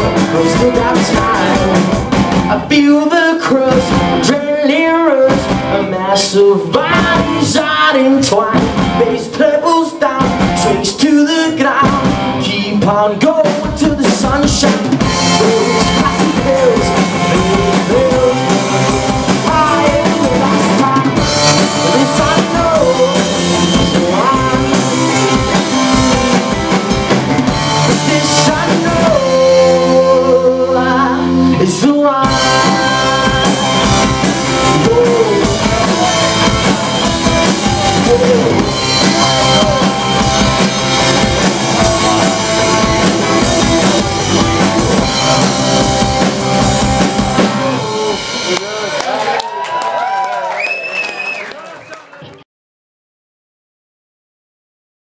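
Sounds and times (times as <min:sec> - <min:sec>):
drum kit: 0:00.0 - 0:50.3
live rock band playing: 0:00.0 - 0:50.5.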